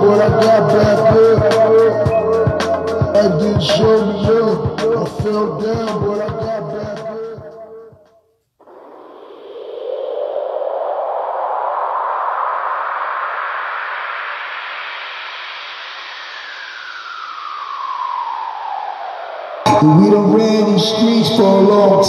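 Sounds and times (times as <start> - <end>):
rap music: 0.0 - 7.8, 19.7 - 22.0
synthesized whooshing sweep: 8.6 - 22.0.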